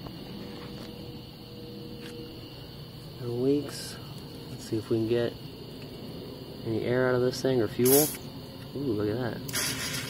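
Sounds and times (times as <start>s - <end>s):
electric fuel pump humming: 9.5s - 10.0s.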